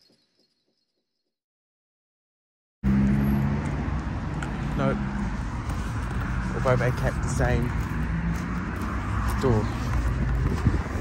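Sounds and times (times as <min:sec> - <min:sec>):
urban background hum: 0:02.8 - 0:11.0.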